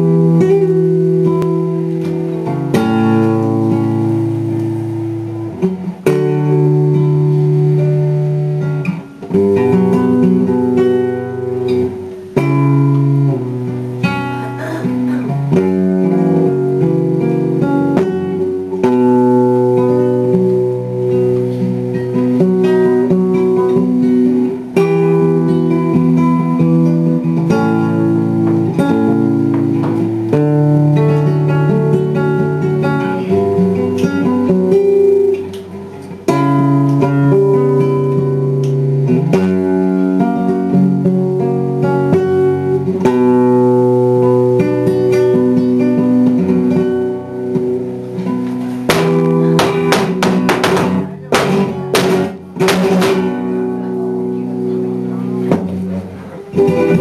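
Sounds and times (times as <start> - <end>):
solo acoustic guitar: 0.0 - 57.0.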